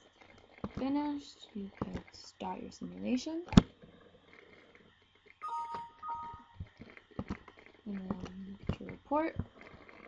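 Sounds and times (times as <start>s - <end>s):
two-tone alert chime: 5.4s - 6.6s.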